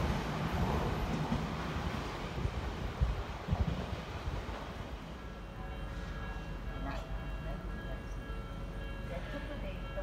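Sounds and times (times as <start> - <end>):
train rumbling through station: 0.0 - 10.0.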